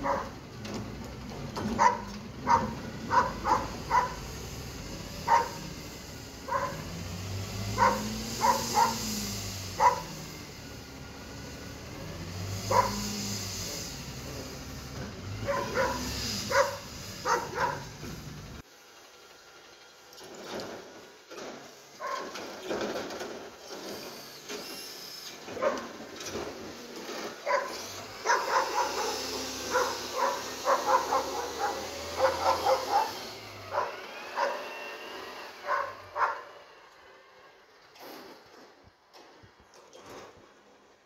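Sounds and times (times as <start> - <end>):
garbage truck engine revving: 0.0 - 18.7, 20.2 - 38.6
hydraulic arching whine: 0.0 - 19.2, 23.5 - 37.8.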